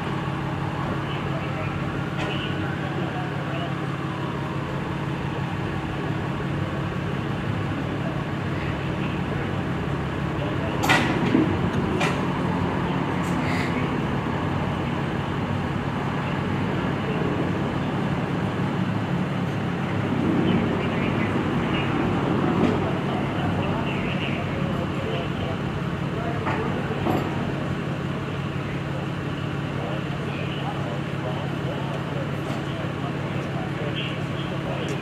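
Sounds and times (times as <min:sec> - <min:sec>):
idling engines and traffic: 0:00.0 - 0:35.0
indistinct voices talking: 0:00.0 - 0:35.0.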